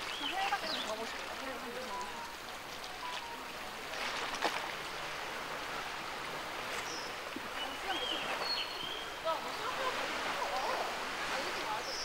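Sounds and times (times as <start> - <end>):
sea surf on rocky shore: 0.0 - 12.0.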